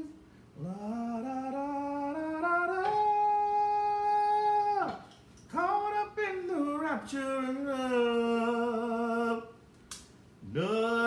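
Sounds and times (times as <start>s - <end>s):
person singing without words: 0.0s - 9.6s, 10.4s - 11.0s.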